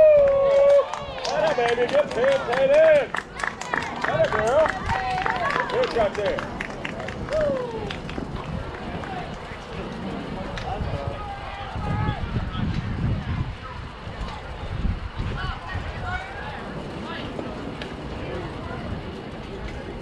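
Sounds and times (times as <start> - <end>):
people clapping: 0.0 - 11.1
crowd yelling and cheering: 0.0 - 20.0.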